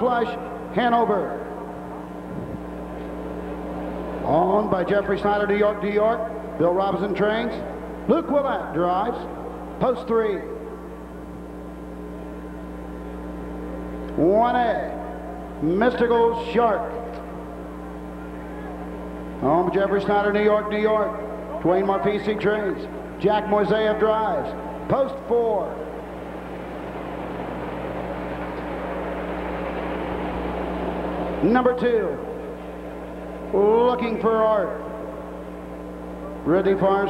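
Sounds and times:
low electrical hum: 0.0 - 37.0
steady background noise: 0.0 - 37.0.

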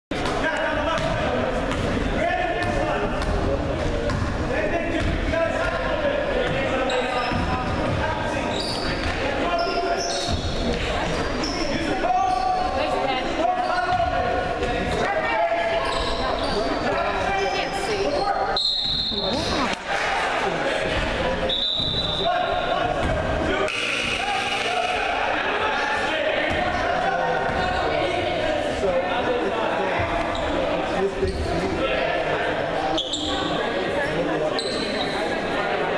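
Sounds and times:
hubbub of voices: 0.1 - 35.9
short high-pitched tones: 23.7 - 25.0.

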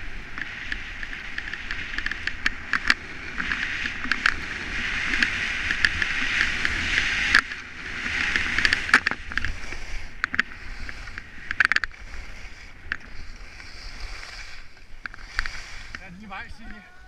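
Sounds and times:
skis scraping on snow: 0.0 - 17.0.

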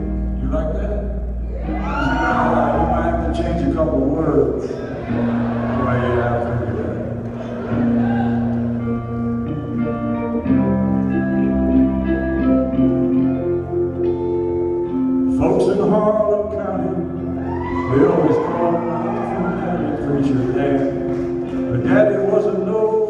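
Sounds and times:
live country band playing: 0.0 - 23.0.

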